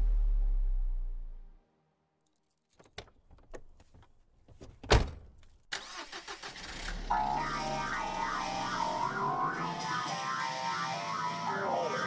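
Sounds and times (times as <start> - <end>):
electronic background music: 7.1 - 12.0.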